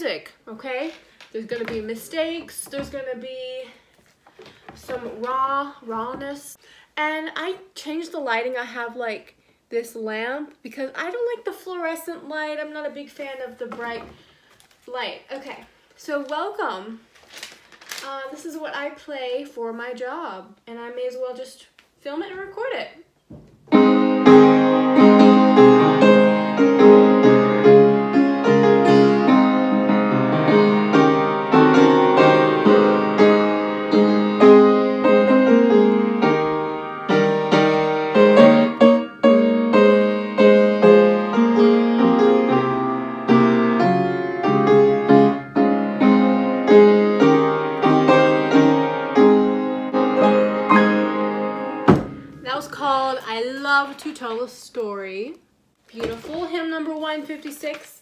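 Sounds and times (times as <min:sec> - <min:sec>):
piano playing a hymn: 0:23.7 - 0:52.3.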